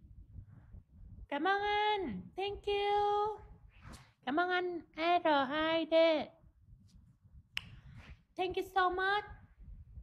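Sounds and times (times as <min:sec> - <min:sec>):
woman's high-pitched voice: 0:01.3 - 0:03.6, 0:04.3 - 0:06.4, 0:08.4 - 0:09.5.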